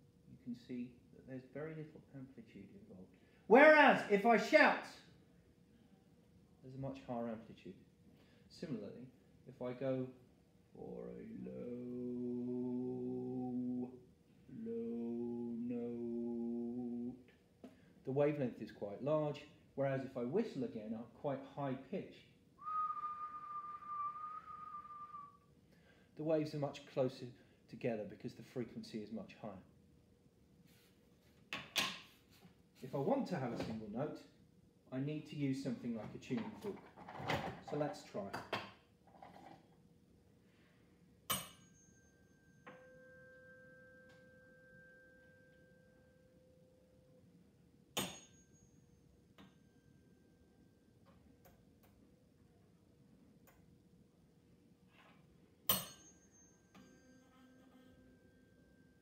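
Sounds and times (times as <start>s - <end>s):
man whistling high note: 22.6s - 25.5s
tuning fork ringing: 41.3s - 47.4s, 48.0s - 51.0s, 55.7s - 59.0s.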